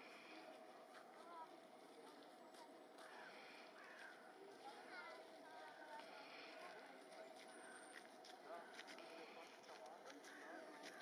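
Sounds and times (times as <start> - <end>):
faint outdoor hum: 0.0 - 11.0.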